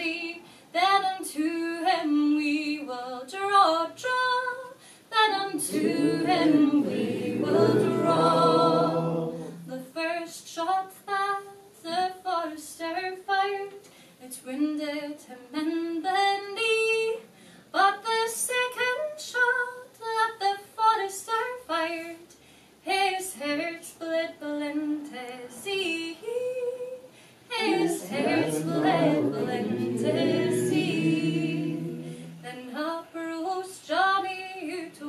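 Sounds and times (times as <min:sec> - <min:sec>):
woman singing unaccompanied ballad: 0:00.0 - 0:09.0, 0:09.6 - 0:35.0.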